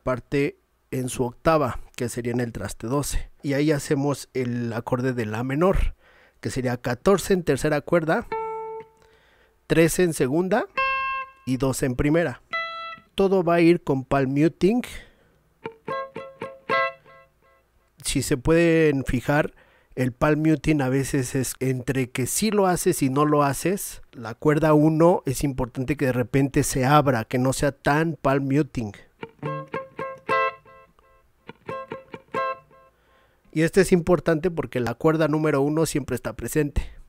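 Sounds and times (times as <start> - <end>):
palm-muted electric guitar chords: 8.3 - 9.2, 10.7 - 11.6, 12.4 - 13.2, 15.6 - 17.6, 29.2 - 32.9.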